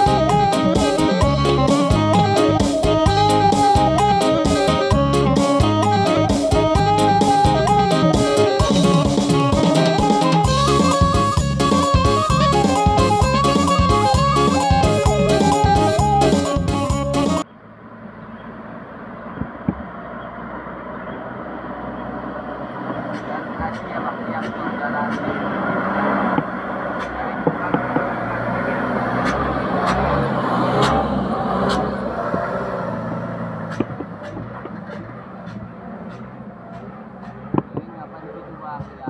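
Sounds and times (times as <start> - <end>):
diesel truck passing by: 0.0 - 39.0.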